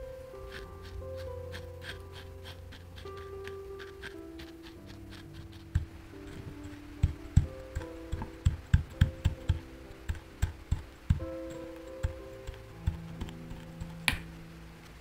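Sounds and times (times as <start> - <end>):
soft background music: 0.0 - 15.0
dull thumps of glass tamping: 3.2 - 14.3.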